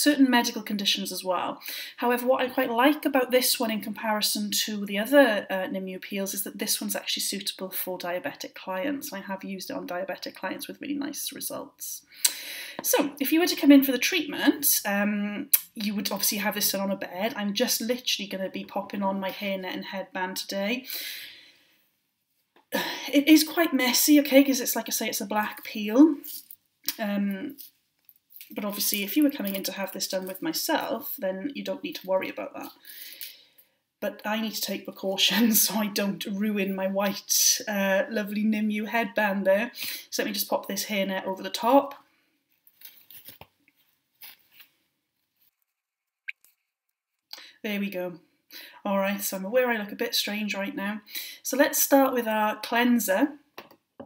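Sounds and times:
woman speaking: 0:00.0 - 0:12.1, 0:12.8 - 0:20.9, 0:22.8 - 0:27.6, 0:28.5 - 0:32.8, 0:34.0 - 0:42.0, 0:47.6 - 0:48.2, 0:48.9 - 0:53.4
woman breathing: 0:01.6 - 0:02.0, 0:12.1 - 0:12.8, 0:20.8 - 0:21.8, 0:32.8 - 0:33.8
hairnet rustling and crinkling: 0:42.4 - 0:46.2.

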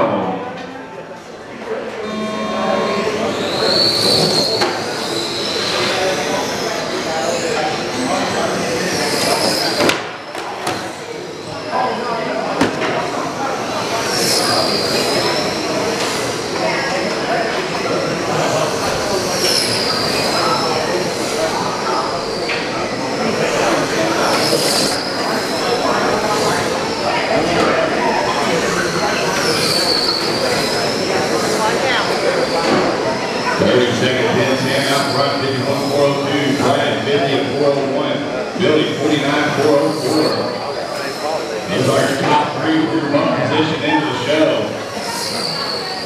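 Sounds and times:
high-pitched whine of toy truck motors: 0:18.0 - 0:27.4.

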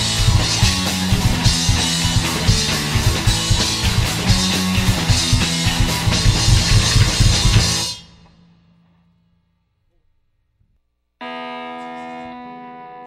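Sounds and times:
rock band playing loudly: 0:00.0 - 0:08.1
held electric guitar note: 0:11.2 - 0:13.0.

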